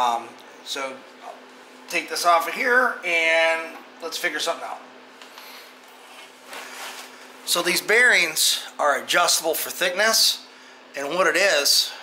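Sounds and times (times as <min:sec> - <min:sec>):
heater humming: 0:00.0 - 0:12.0.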